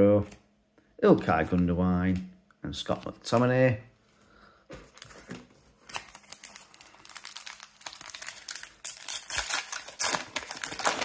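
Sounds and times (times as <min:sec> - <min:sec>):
card pack wrapper crinkling: 0:04.8 - 0:11.0.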